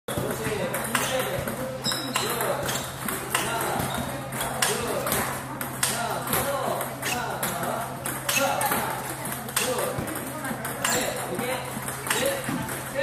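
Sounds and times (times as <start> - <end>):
ping-pong ball bat clicks: 0.1 - 12.9.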